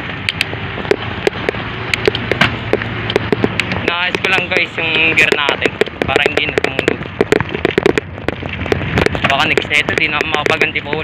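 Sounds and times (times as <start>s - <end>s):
bicycle crackling clicks and rattles: 0.0s - 11.0s
wind on microphone: 0.0s - 11.0s.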